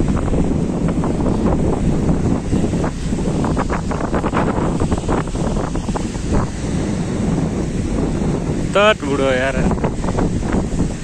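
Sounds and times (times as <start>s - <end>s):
sea surf washing on beach: 0.0s - 11.0s
wind buffeting microphone: 0.0s - 11.0s.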